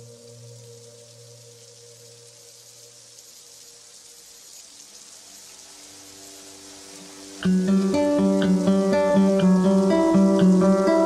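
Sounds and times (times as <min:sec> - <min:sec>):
low sustained tones: 0:00.0 - 0:03.2
faint rain-like hiss: 0:00.0 - 0:11.0.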